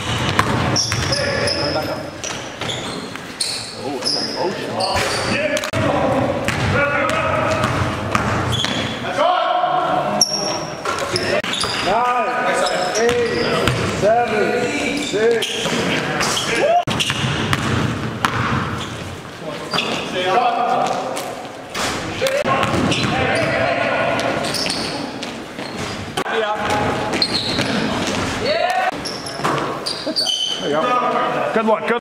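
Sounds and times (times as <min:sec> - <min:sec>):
basketball bouncing on court floor: 0:00.0 - 0:01.4, 0:05.0 - 0:09.0, 0:13.0 - 0:14.0, 0:16.9 - 0:19.0, 0:22.5 - 0:25.9
sneakers squeaking: 0:00.0 - 0:09.1, 0:10.2 - 0:30.8
players calling out: 0:22.1 - 0:31.4.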